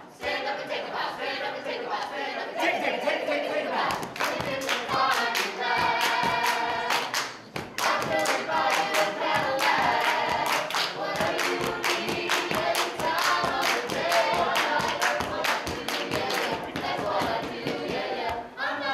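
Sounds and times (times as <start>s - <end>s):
women singing into microphone: 0.2s - 7.1s, 7.8s - 18.9s
rhythmic hand-clapping: 3.9s - 18.5s.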